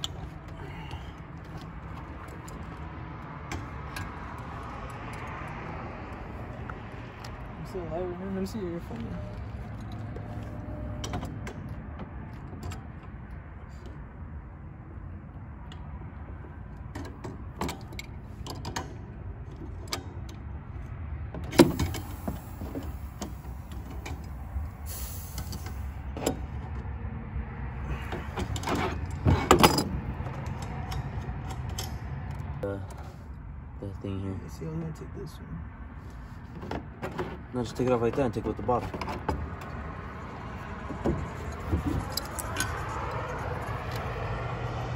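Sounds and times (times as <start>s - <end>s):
metallic clicks and knocks: 28.3s - 32.6s, 40.8s - 44.1s.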